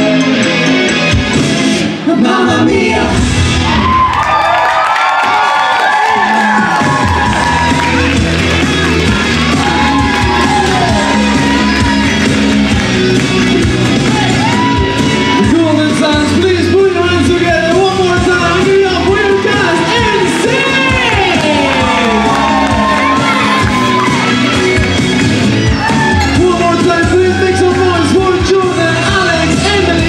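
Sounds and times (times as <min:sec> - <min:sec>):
live pop music through pa: 0:00.0 - 0:30.0
audience cheering: 0:03.6 - 0:16.2, 0:18.4 - 0:28.4.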